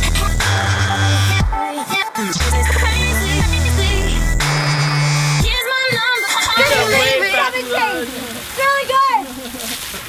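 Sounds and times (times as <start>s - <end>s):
electronic dance music: 0.0s - 7.8s
people yelling and squealing: 5.6s - 9.7s
hose water spraying: 5.6s - 10.0s.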